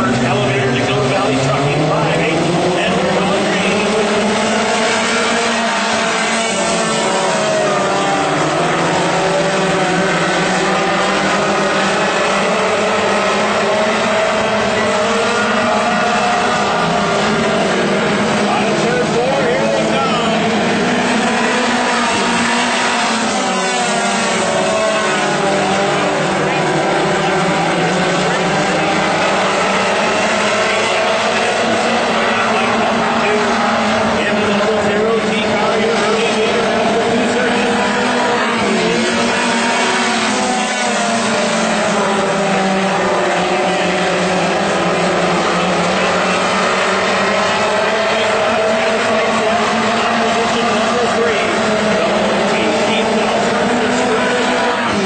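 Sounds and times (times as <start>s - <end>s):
race car engines running hard: 0.0s - 55.0s.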